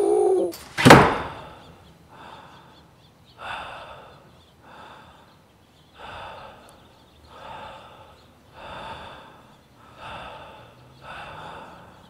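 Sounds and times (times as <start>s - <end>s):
wavering voice-like sound: 0.0s - 0.6s
wooden door slamming: 0.6s - 1.5s
heavy gasping breaths: 1.2s - 12.0s.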